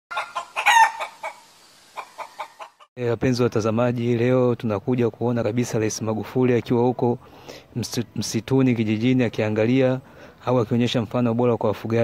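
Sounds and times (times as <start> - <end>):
chicken squawk: 0.1 - 2.9
chickens clucking: 0.1 - 2.9.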